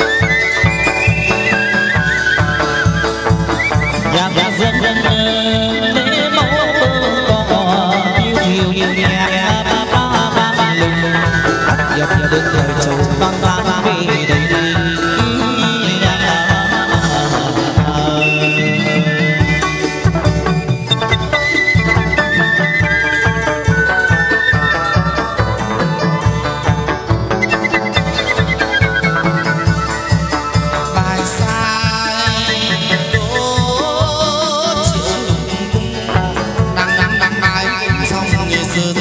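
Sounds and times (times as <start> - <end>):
plucked lute: 0.0 - 39.0
steady drum beat: 0.0 - 39.0
sustained lead melody: 0.0 - 39.0.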